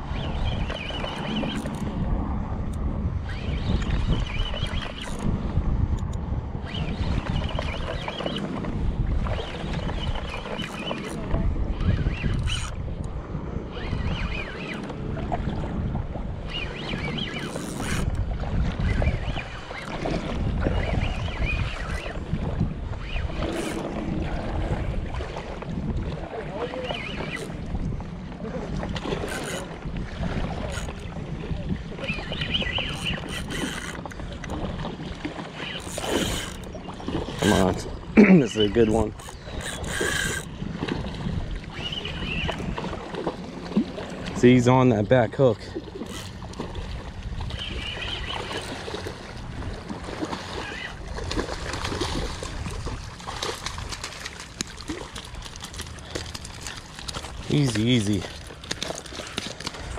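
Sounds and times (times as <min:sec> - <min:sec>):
wind buffeting microphone: 0:00.0 - 0:59.9
fishing reel cranking: 0:00.1 - 0:02.0, 0:02.7 - 0:05.3, 0:11.8 - 0:13.1, 0:16.6 - 0:18.2, 0:23.2 - 0:23.9, 0:27.0 - 0:27.6, 0:29.1 - 0:29.8, 0:30.6 - 0:31.1, 0:32.6 - 0:34.2, 0:35.6 - 0:37.9, 0:38.9 - 0:40.6, 0:46.0 - 0:46.5, 0:48.4 - 0:48.9.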